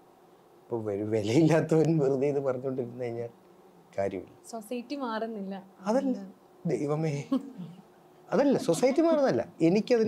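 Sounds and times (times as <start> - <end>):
man speaking: 0.7 - 3.3, 4.0 - 4.3, 5.8 - 7.4, 8.3 - 10.0.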